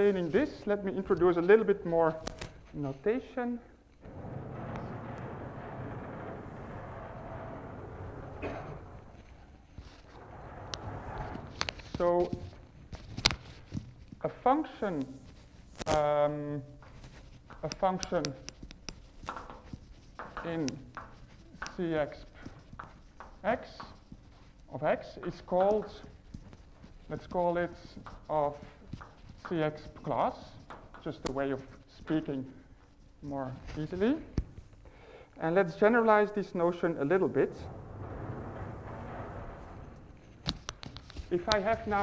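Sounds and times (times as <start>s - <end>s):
sliding blackboard panels rumbling: 4.0s - 12.8s, 36.7s - 42.0s.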